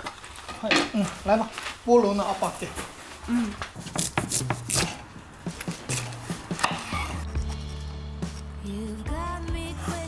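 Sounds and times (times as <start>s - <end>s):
knife chopping on cutting board: 3.8s - 5.0s.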